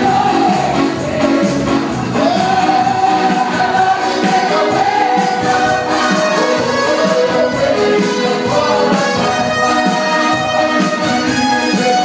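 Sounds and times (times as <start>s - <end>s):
choir singing over loudspeakers: 0.0s - 12.0s.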